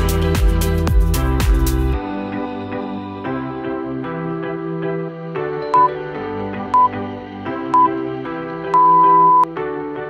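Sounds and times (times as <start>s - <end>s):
soft background music: 0.0s - 10.0s
short high timer beeps: 7.8s - 8.0s, 8.8s - 9.5s.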